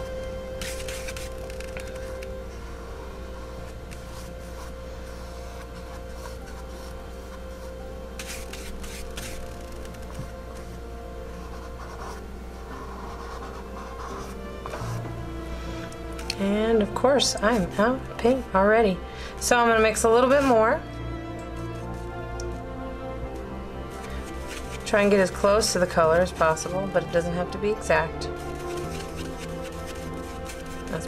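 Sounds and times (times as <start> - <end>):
soft background music: 0.0 - 31.0
paintbrush rubbing on paint: 0.6 - 2.2, 3.4 - 10.0, 11.3 - 15.1, 21.5 - 22.2, 23.8 - 26.8, 28.3 - 31.0.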